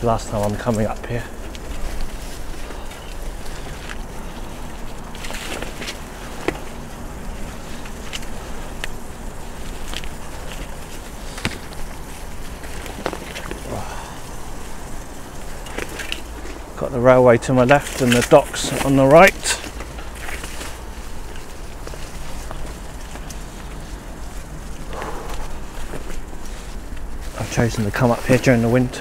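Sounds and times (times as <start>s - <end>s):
twigs snapping: 0.0s - 16.8s, 17.5s - 29.0s
bicycle tyres rolling on dirt: 0.0s - 29.0s.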